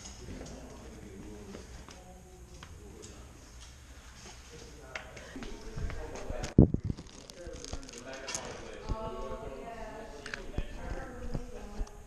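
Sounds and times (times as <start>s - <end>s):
plastic bag crinkling: 6.8s - 8.8s.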